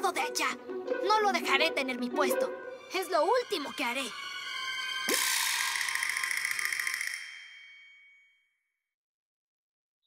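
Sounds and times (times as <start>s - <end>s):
cartoon shimmering chime: 3.3s - 8.4s.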